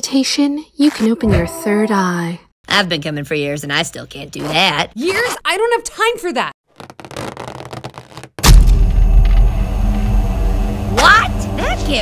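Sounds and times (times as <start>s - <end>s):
deep boom: 8.4s - 9.9s
low rumbling hum: 8.4s - 12.0s.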